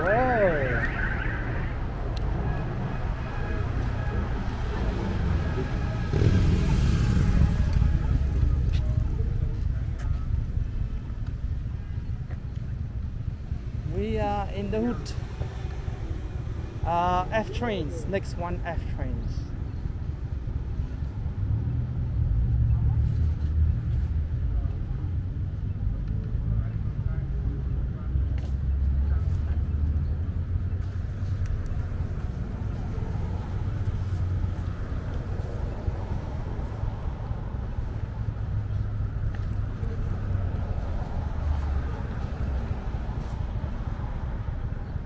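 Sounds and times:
low rumble of cars: 0.0 - 45.0.

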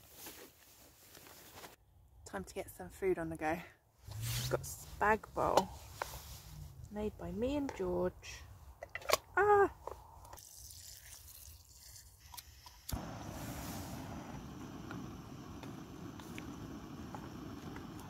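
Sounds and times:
gas stove burner roaring: 12.9 - 18.0.

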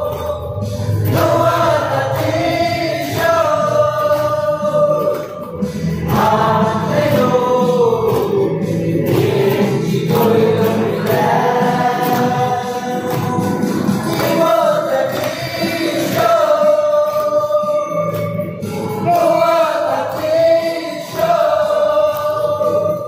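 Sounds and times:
group singing in unison: 0.0 - 23.0
hand claps: 0.0 - 23.0.

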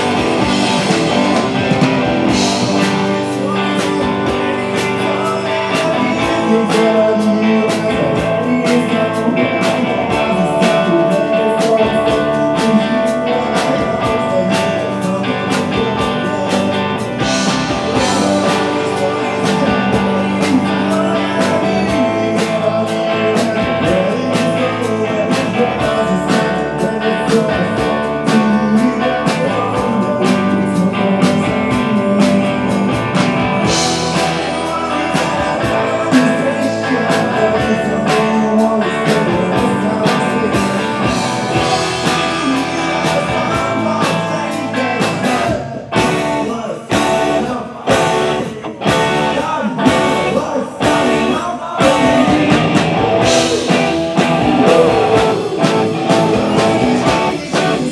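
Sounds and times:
man singing: 0.0 - 57.9
rock band playing: 0.0 - 57.9.

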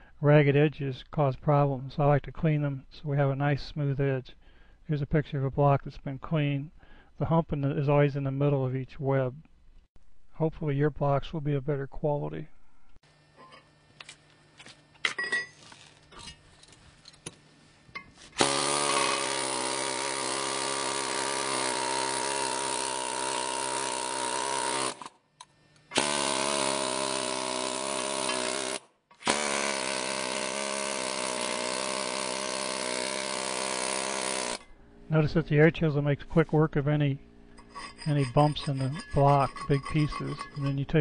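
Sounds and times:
pneumatic chisel hammering concrete: 18.4 - 25.1, 25.9 - 34.7, 37.9 - 40.8.

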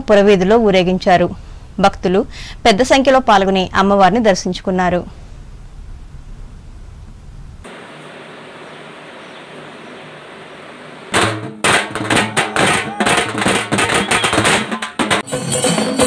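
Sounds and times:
loud fast drumming: 11.1 - 16.0
crowd and street noise: 12.0 - 14.7.

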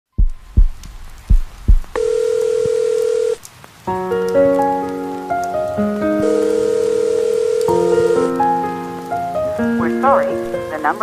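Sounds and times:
low heartbeat thumps: 0.1 - 2.0
music: 3.9 - 11.0.

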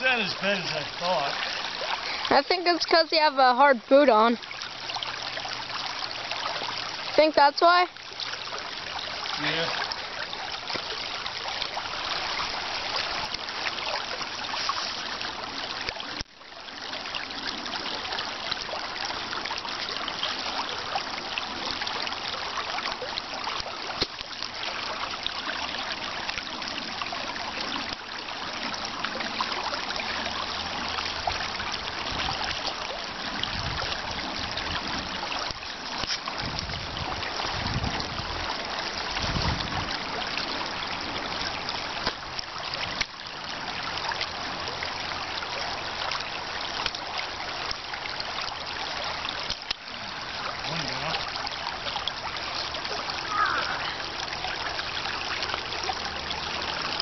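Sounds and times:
creek water running: 0.0 - 57.0.

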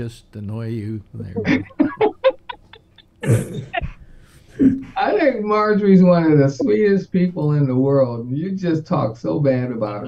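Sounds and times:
man laughing: 0.8 - 4.0
man coughing: 3.2 - 4.0.

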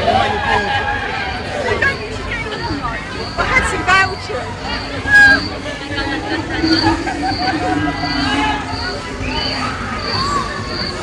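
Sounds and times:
crowd chatter: 0.0 - 11.0
louder voices close by: 0.0 - 11.0.

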